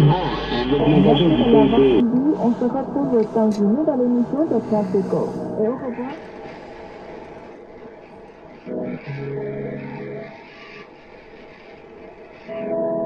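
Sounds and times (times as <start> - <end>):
radio band hiss: 0.0 - 13.0.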